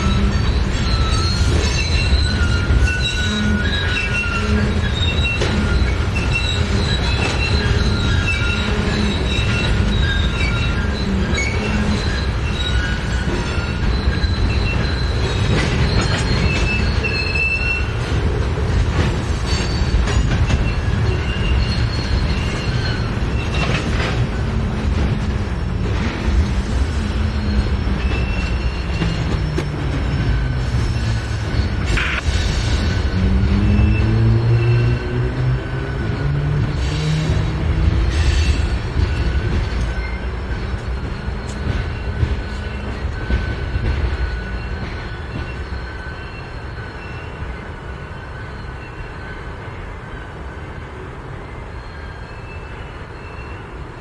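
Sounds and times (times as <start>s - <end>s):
high-pitched wheel squeal: 0.0s - 18.3s, 19.3s - 50.6s
train wheels rumbling on rail: 0.0s - 54.0s.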